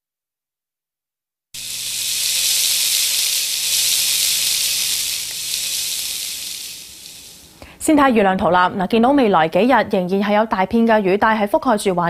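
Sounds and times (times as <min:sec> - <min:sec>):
cartoon rain hiss: 0:01.6 - 0:07.6.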